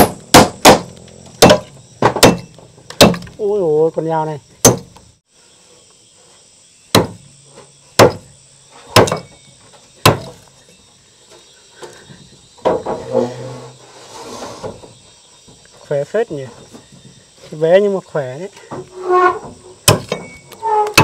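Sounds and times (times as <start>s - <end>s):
insects buzzing: 0.0s - 21.0s.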